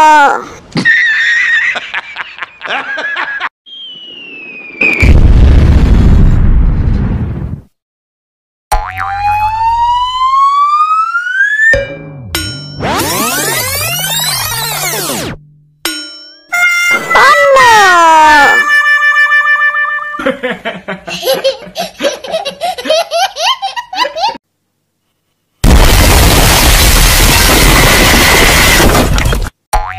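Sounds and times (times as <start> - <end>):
whistle-like tone rising in pitch: 3.7 - 5.2
explosion rumbling: 3.8 - 7.7, 25.6 - 29.2
toddler laughing: 21.1 - 24.4.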